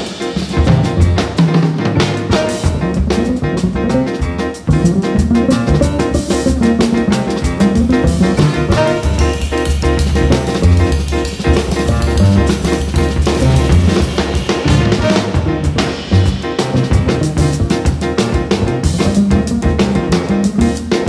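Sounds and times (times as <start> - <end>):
drum kit with cymbals: 0.0 - 21.0
jazz band playing: 0.0 - 21.0
upright bass walking: 0.5 - 21.0.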